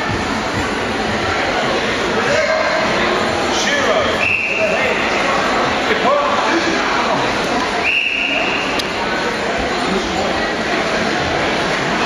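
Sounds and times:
crowd chatter echoing: 0.0s - 12.0s
whistle blasts: 4.2s - 4.8s, 7.8s - 8.8s.

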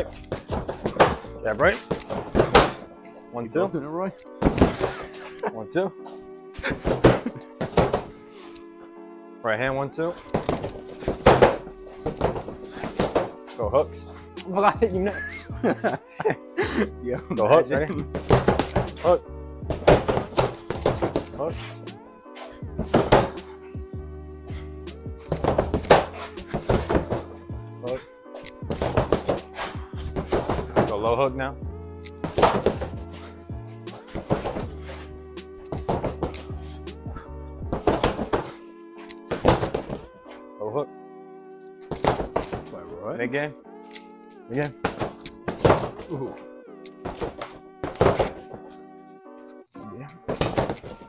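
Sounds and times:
background music: 0.0s - 51.0s
punches thudding on heavy bag: 2.1s - 2.8s, 10.4s - 13.4s, 18.1s - 19.1s, 19.7s - 21.2s, 22.7s - 23.5s, 32.2s - 33.3s, 37.6s - 38.6s, 39.3s - 40.1s
punches on heavy bag: 10.5s - 13.4s, 22.8s - 23.5s.

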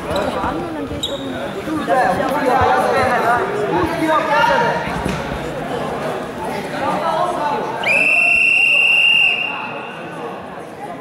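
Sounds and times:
voices of coaches and spectators: 0.0s - 11.0s
referee's whistle blast: 7.9s - 9.9s.

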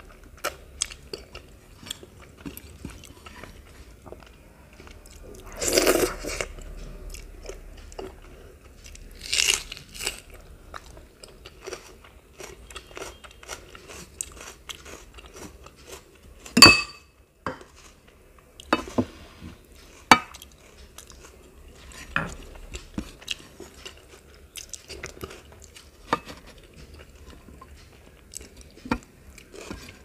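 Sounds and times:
chewing crisp fried food: 0.0s - 16.6s, 19.6s - 30.0s
dishware clinking: 16.6s - 17.1s.

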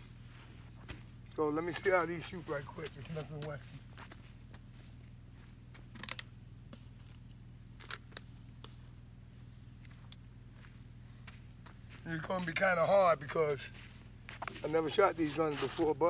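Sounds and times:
footsteps on dry dirt: 0.0s - 16.0s
steady low hum: 0.0s - 16.0s.

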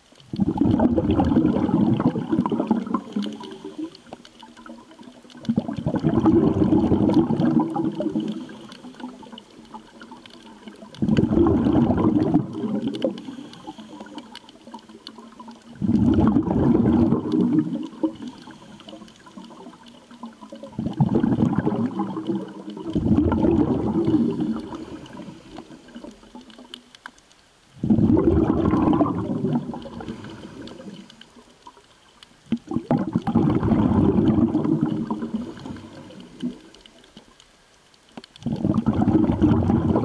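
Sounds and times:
scuba regulator bubbles gurgling: 0.0s - 40.0s.

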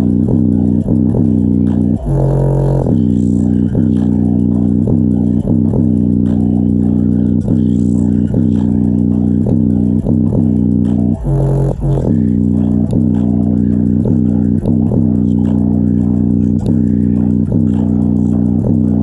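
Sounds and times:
speaker playing bass-heavy music: 0.0s - 19.0s.

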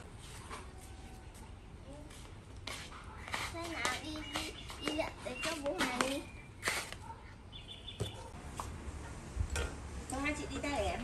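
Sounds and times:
young child talking: 3.3s - 6.3s.

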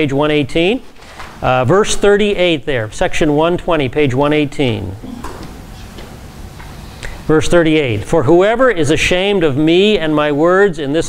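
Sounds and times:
room noise: 0.0s - 11.0s.

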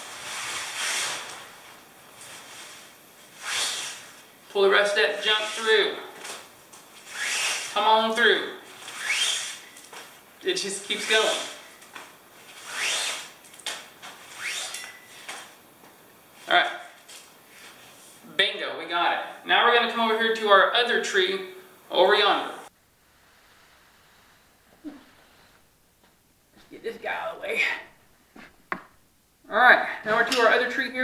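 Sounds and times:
cord swishing through carabiner: 5.1s - 7.8s, 8.7s - 10.2s, 10.8s - 15.6s.

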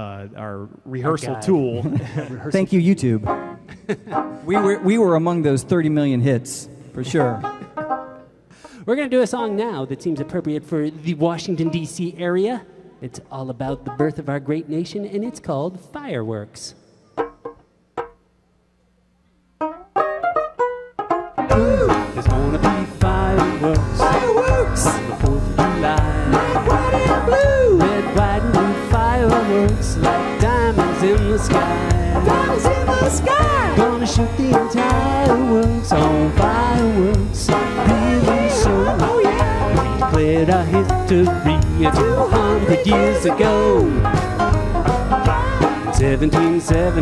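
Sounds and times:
picked banjo notes: 1.0s - 14.8s, 17.1s - 18.4s, 19.6s - 47.0s
live band playing: 2.6s - 6.2s, 6.9s - 8.6s, 19.6s - 47.0s.

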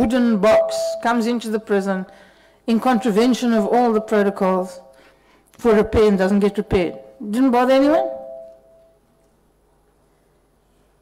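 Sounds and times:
person speaking: 0.0s - 2.1s, 2.7s - 4.9s, 5.6s - 8.7s
faint two-note ringing tone: 7.9s - 9.0s.

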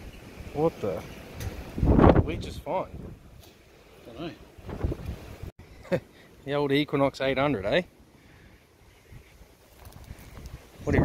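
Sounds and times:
wind rumbling on microphone: 1.3s - 3.4s, 4.6s - 5.5s, 9.0s - 11.0s.

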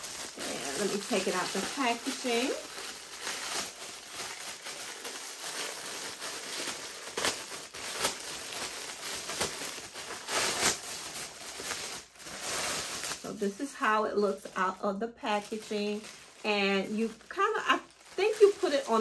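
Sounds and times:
plastic bag crinkling: 0.0s - 19.0s.

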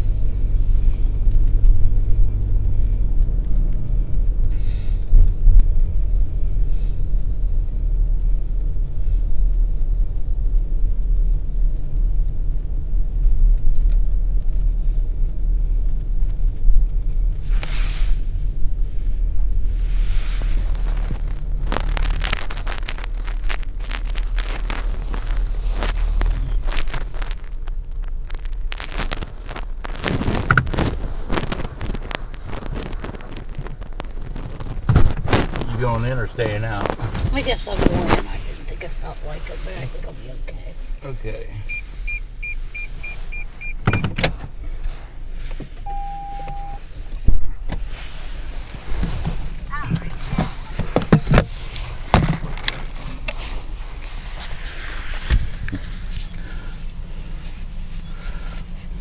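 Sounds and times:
car engine idling: 0.0s - 59.0s
clothing rustling on microphone: 13.7s - 41.0s, 41.6s - 43.9s, 44.7s - 59.0s.

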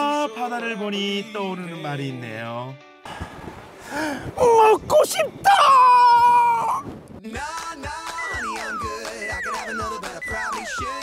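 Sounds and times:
background music: 0.0s - 3.2s, 7.3s - 11.0s
man shouting high-pitched: 4.4s - 6.8s.

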